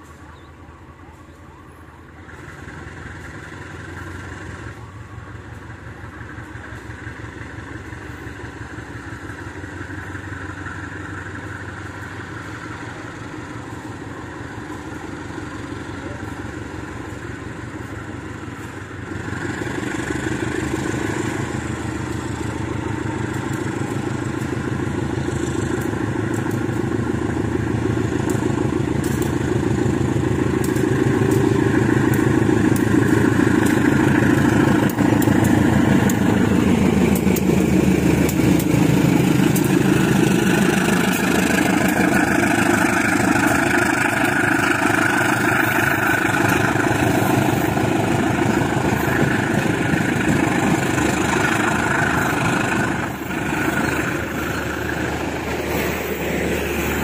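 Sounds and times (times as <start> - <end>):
diesel locomotive engine under load: 0.0 - 57.0.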